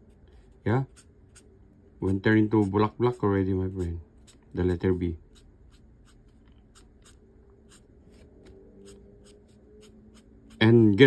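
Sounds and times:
marker scratching on paper: 0:00.0 - 0:11.0.

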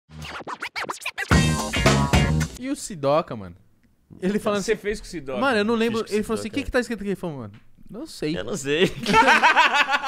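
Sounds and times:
hip-hop jingle music: 0:00.1 - 0:02.6
turntable scratch sweeps: 0:00.1 - 0:02.6.

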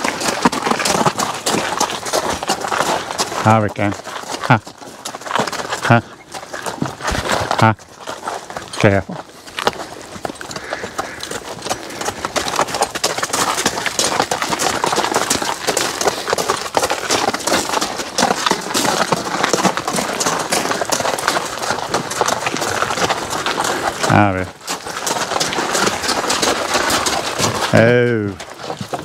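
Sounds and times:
horse hooves on wet gravel: 0:00.0 - 0:29.0.

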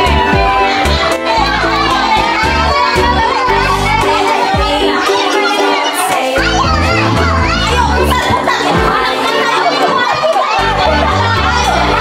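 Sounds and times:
children shouting: 0:00.0 - 0:12.0
loud music with heavy bass: 0:00.0 - 0:12.0.

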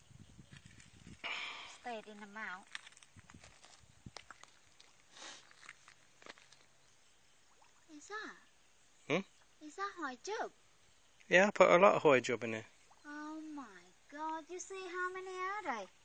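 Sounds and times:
soft hiss: 0:00.0 - 0:16.0.

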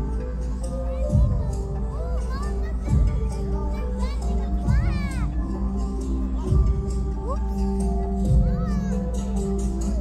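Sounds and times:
children's voices: 0:00.0 - 0:10.0
outdoor crowd chatter: 0:00.0 - 0:10.0.

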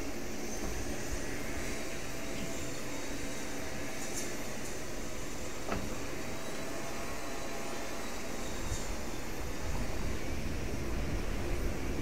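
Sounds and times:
distant engine hum: 0:00.0 - 0:12.0
wind rumble on microphone: 0:08.6 - 0:12.0.

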